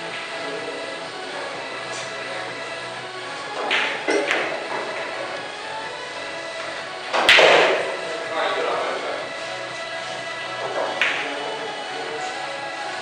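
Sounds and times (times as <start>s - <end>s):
background music: 0.0s - 13.0s
pool balls clacking: 0.0s - 13.0s.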